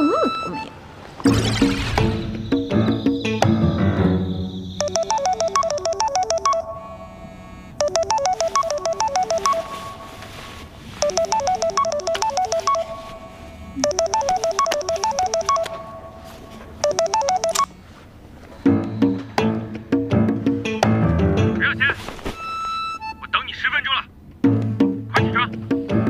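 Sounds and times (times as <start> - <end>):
smartphone alarm ringtone: 0.0 - 0.7, 4.8 - 17.8.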